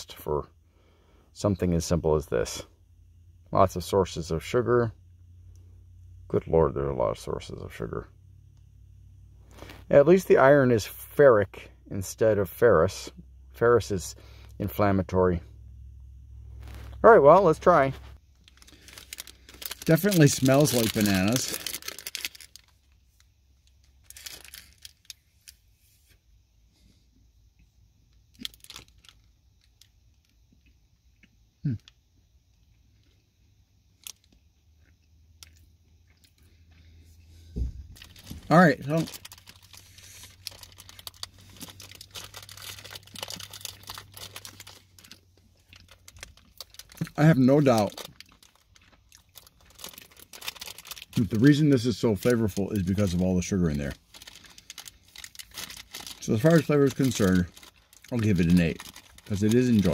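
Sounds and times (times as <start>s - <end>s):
plastic wrapper crinkling: 16.5s - 23.3s, 23.9s - 25.6s, 28.3s - 29.3s, 37.9s - 59.9s
quiet chewing: 34.3s - 37.5s.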